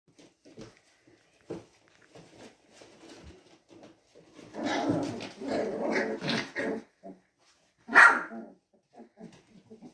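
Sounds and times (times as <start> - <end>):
puppy growling: 4.4 - 7.2, 8.2 - 9.9
puppy barking: 7.9 - 8.5.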